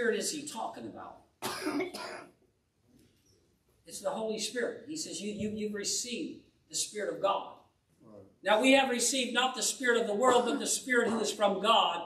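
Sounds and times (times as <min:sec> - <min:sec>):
man clearing throat: 0:01.4 - 0:02.3, 0:10.3 - 0:11.5.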